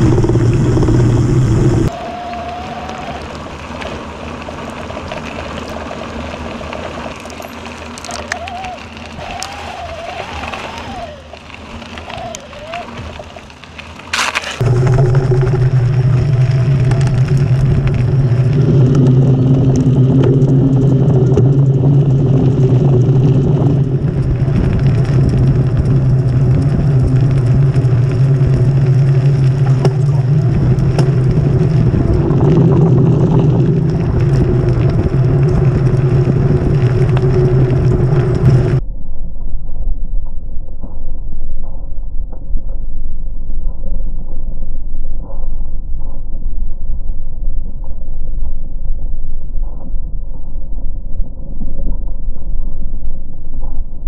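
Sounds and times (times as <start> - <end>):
wind noise: 0.0 - 5.0, 14.4 - 54.0
bike tyres rumbling on rough trail: 0.0 - 38.8.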